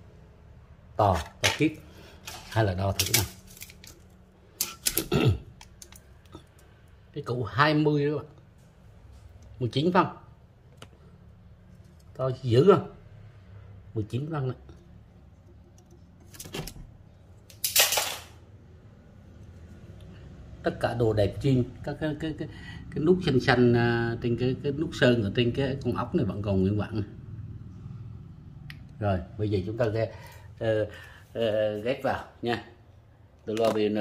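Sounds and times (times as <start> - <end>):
tape measure clicks and rattles: 17.5 - 18.4.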